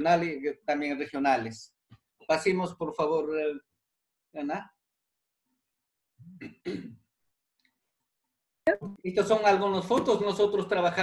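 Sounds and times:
man clearing his throat: 6.2 - 7.1.

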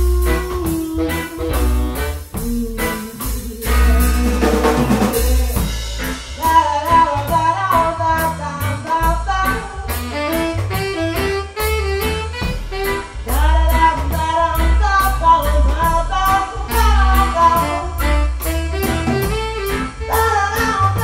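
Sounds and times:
drum beat: 0.0 - 7.8
saxophone melody: 0.0 - 8.0, 9.2 - 21.0
bass line: 0.0 - 21.0.

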